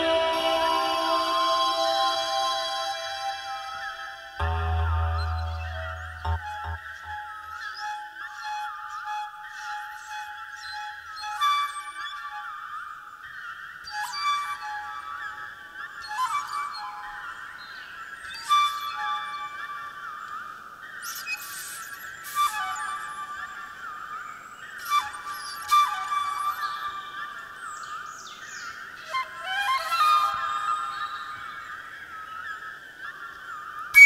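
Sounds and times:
shimmering layered drone: 0.0s - 7.3s
solo flute: 0.0s - 34.0s.

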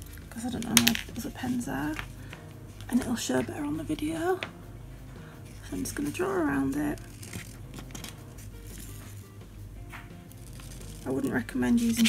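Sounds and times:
marker scratching on fabric: 5.5s - 9.4s, 10.2s - 12.0s.

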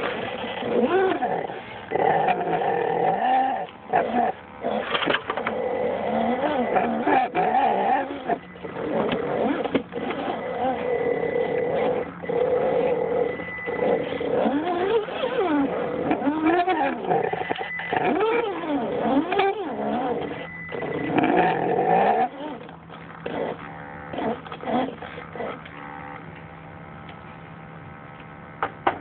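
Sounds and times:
electric motor whining: 0.0s - 29.0s.

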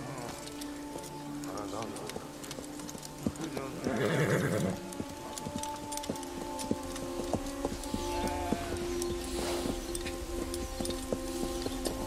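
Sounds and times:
background music: 0.0s - 12.0s
horse hooves clopping: 0.0s - 12.0s
horse whinnying: 3.9s - 4.9s.

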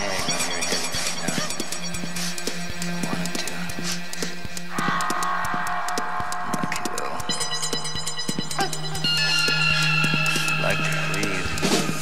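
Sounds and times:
dark psytrance electronic music: 0.0s - 12.0s.

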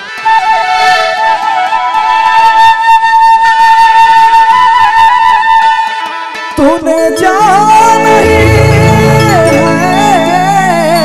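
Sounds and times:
flute melody: 0.0s - 11.0s.

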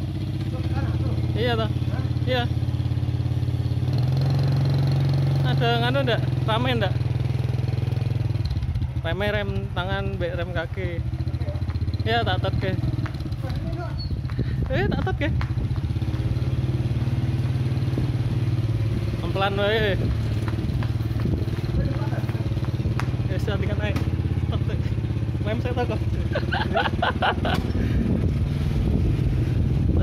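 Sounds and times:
motorcycle engine running: 0.0s - 30.0s.

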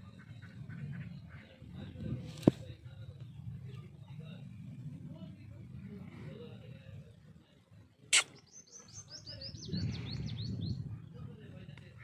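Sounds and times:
sharp click: 8.1s - 8.4s
small bird singing high chirps: 8.2s - 11.1s.

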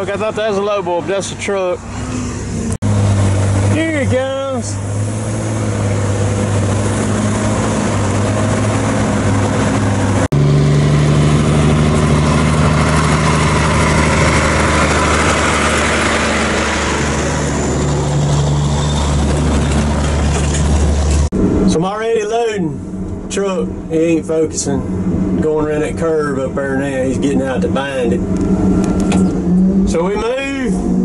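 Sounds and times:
truck diesel engine running: 0.0s - 21.6s.

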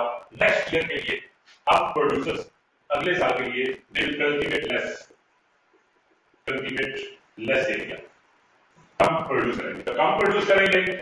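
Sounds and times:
man speaking: 0.0s - 5.1s, 6.5s - 8.1s, 9.0s - 11.0s.

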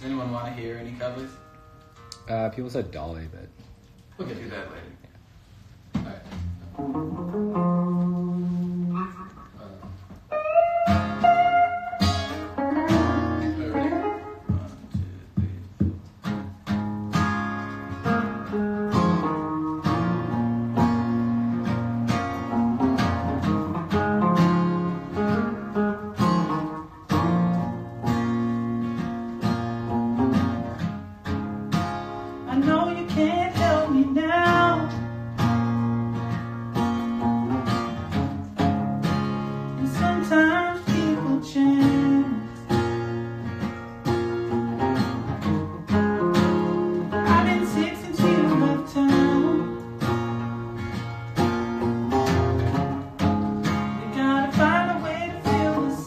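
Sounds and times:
acoustic guitar strumming chords: 6.3s - 56.0s
electric guitar bending melody: 6.4s - 56.0s.

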